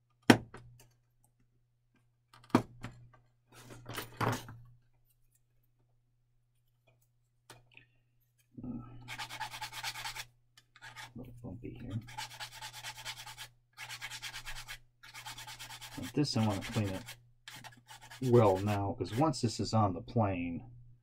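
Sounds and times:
sanding stick rubbing plastic: 9.1s - 11.1s, 12.0s - 19.3s.

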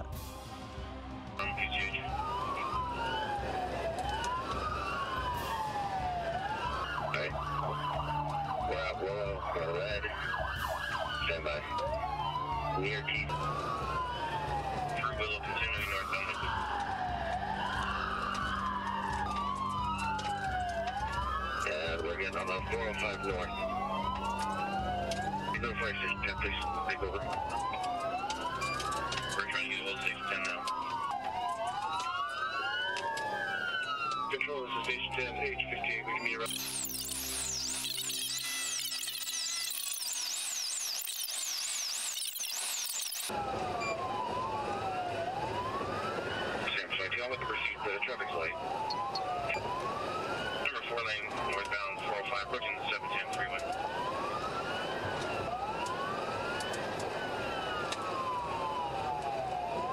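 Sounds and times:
police siren wailing: 0.0s - 59.9s
fast high-pitched siren sweeps: 19.5s - 59.9s.

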